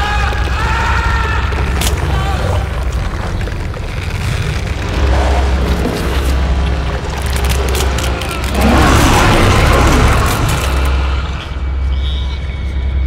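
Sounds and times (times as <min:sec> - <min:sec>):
low rumbling drone: 0:02.2 - 0:13.0.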